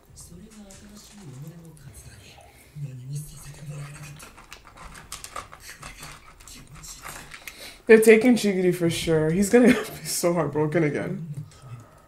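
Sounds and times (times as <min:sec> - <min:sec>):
paper packaging crinkling: 0:03.4 - 0:07.7.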